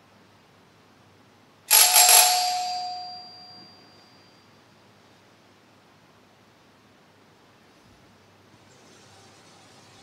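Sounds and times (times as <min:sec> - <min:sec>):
altar bell ringing: 0:01.7 - 0:04.7.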